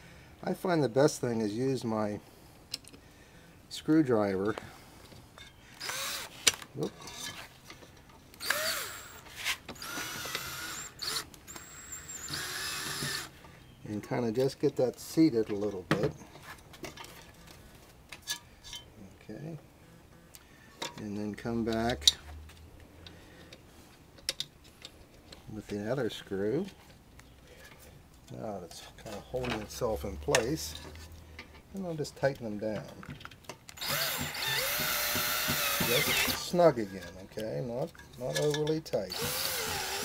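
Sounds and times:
cordless drill driving a screw: 5.8s - 6.6s, 8.4s - 9.2s, 9.8s - 13.4s, 33.8s - 36.5s, 39.1s - 40.0s.

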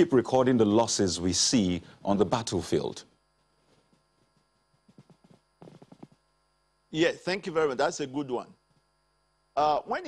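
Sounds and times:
man speaking: 0.0s - 3.1s
electrical mains hum: 0.0s - 10.0s.

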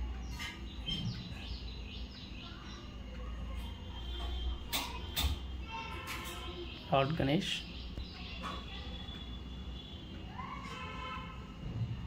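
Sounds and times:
birds chirping: 0.0s - 10.7s.

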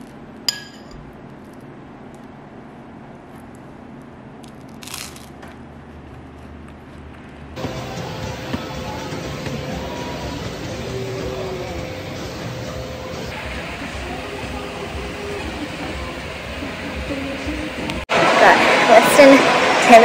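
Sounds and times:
metal spoon clinking on ceramic bowl: 0.5s - 1.0s
exercise machine humming: 7.1s - 20.0s.

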